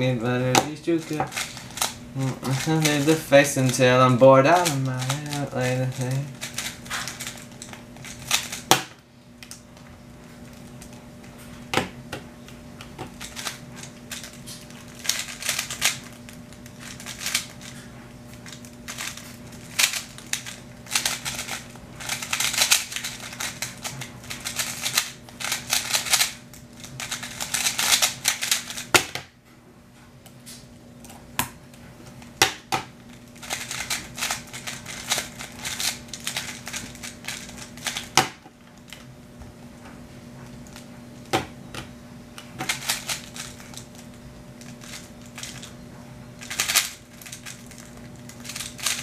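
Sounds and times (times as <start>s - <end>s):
speedcube clicking turns: 18.5s - 28.9s, 33.4s - 38.2s, 46.4s - 47.6s.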